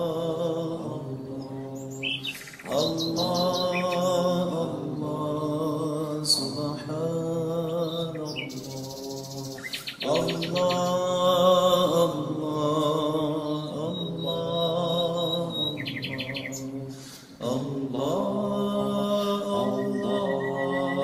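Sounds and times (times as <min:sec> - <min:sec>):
voice chanting long notes: 0:00.0 - 0:21.0
birds chirping: 0:00.7 - 0:05.6, 0:06.2 - 0:17.6, 0:19.0 - 0:21.0.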